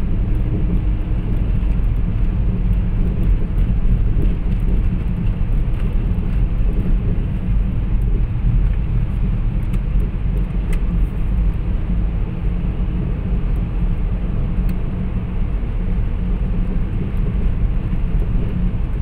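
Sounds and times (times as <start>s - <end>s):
road and engine rumble inside car: 0.0s - 19.0s.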